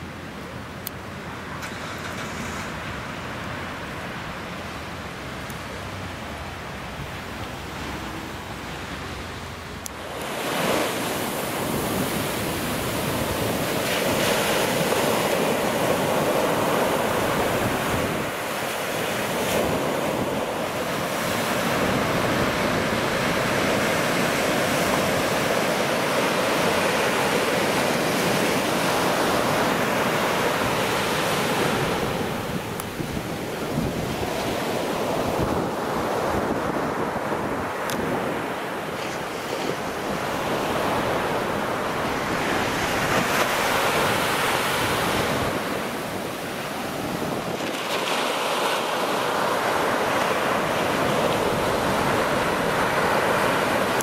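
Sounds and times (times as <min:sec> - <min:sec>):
ocean waves washing up beach: 0:01.1 - 0:54.0
wind buffeting microphone: 0:10.0 - 0:54.0.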